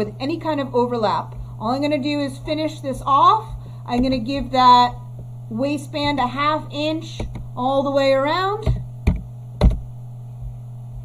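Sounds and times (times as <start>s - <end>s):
low mains hum: 0.0s - 11.0s.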